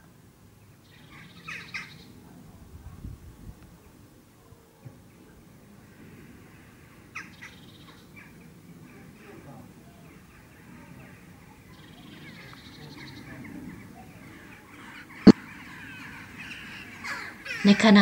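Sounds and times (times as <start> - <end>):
faint bird calls: 5.9 - 18.0
crow cawing: 14.8 - 18.0.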